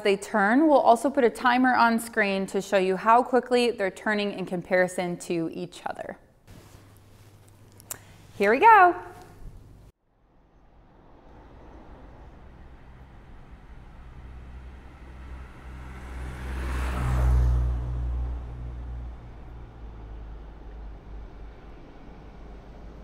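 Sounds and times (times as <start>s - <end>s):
car passing by: 10.4s - 23.0s.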